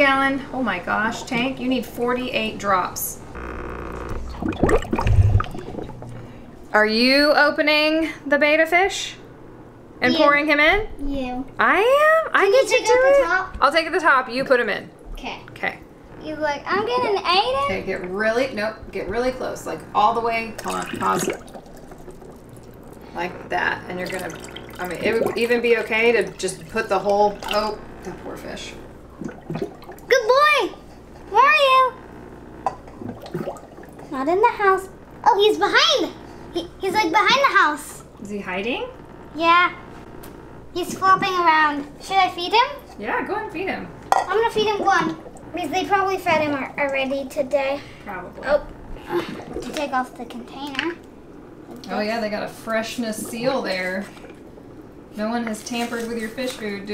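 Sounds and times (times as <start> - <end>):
aquarium water bubbling: 2.9 - 6.7, 16.2 - 42.9, 43.5 - 55.4
water drips and bubbles: 4.1 - 6.2, 20.6 - 23.1, 23.9 - 25.5, 29.0 - 30.1, 32.7 - 34.1, 45.0 - 45.6, 49.2 - 51.1.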